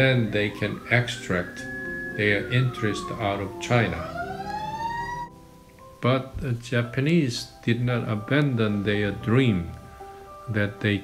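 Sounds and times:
siren-like wail rising: 0.0 - 5.4.

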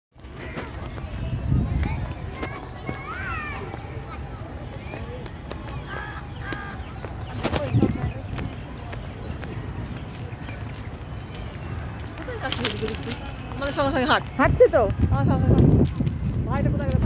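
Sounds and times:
people talking faintly: 0.3 - 17.0.

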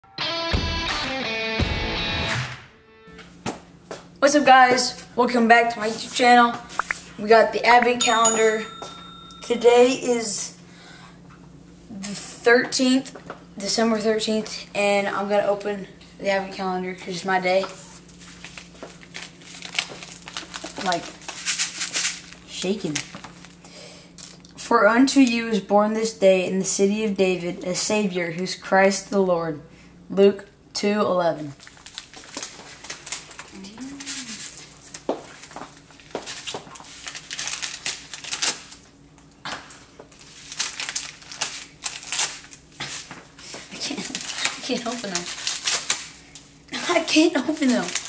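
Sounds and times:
wrapping paper crinkling: 17.7 - 23.6, 31.6 - 48.0.

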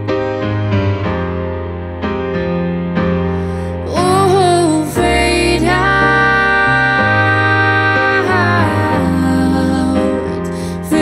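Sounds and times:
digital keyboard piano: 0.0 - 11.0
woman singing with harmony voices: 3.8 - 11.0.

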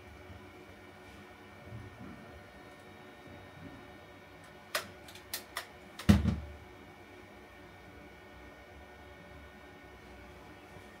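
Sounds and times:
device thumping on cardboard box: 6.0 - 6.5.

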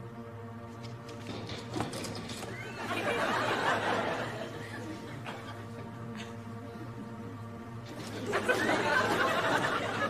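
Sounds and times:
studio audience laughing: 2.6 - 6.3, 8.0 - 10.0.

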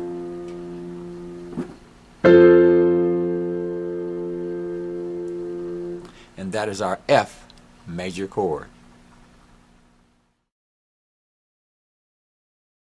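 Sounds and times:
piano chord: 0.0 - 1.6, 2.2 - 6.1
piano low octave notes: 0.0 - 1.6, 2.2 - 6.0.

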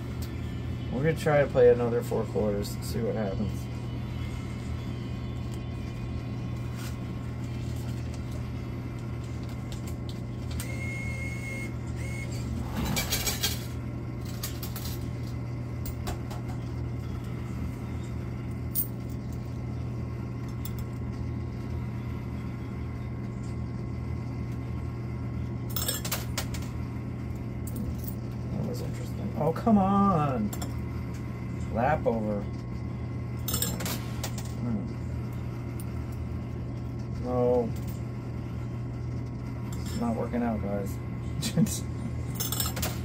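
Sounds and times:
steady low hum: 0.0 - 43.0
coins clinking in arcade machine: 12.7 - 15.2, 25.7 - 26.7, 33.4 - 34.6, 42.3 - 43.0.

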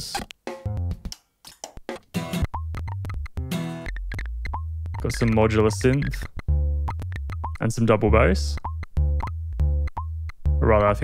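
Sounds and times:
percussive hits and plucked tones: 0.0 - 11.0
steady low bass tone: 2.5 - 11.0.

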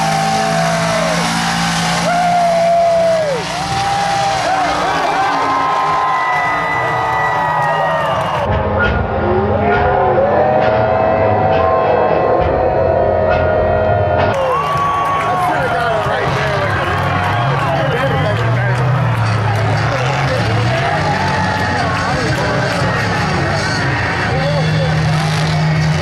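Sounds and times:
crowd noise: 0.0 - 26.0
truck engine revving: 0.0 - 26.0.

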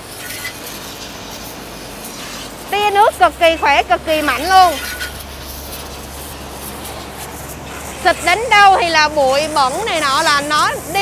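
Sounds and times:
pressure washer spraying water: 0.0 - 11.0.

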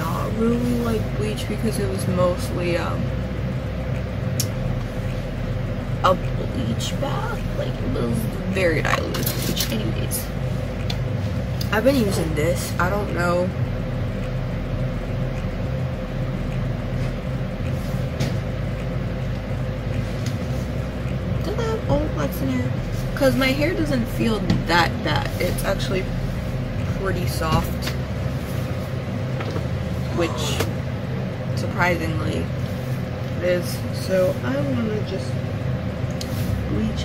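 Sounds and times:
low background hum and rumble: 0.0 - 37.0.

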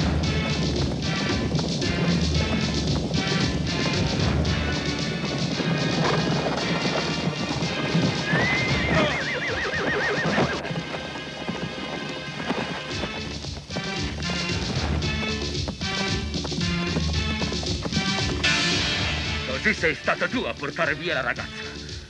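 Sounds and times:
film score music: 0.0 - 22.0
galloping hoofbeats: 0.0 - 22.0
horse whinnying: 2.0 - 15.4.

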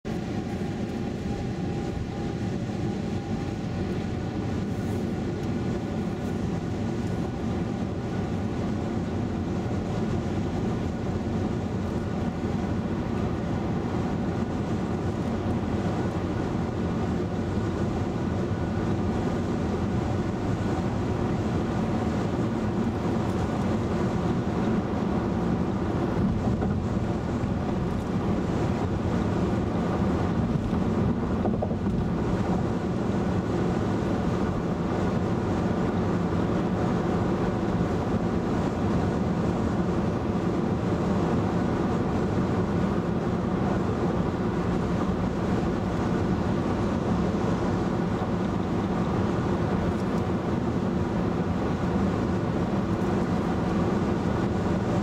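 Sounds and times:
low engine hum: 0.0 - 55.0
road and tyre noise: 0.0 - 55.0.

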